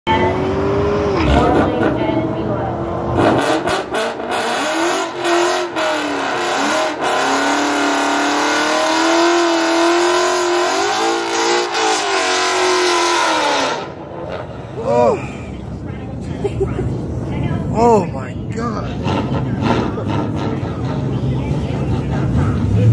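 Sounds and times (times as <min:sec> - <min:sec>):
car engine revving and accelerating: 0:00.1 - 0:14.8, 0:18.7 - 0:22.9.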